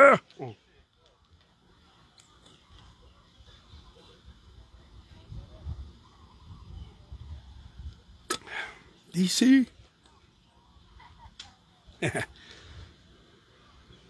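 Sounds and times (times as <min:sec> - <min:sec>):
short breath: 0:08.3 - 0:08.9.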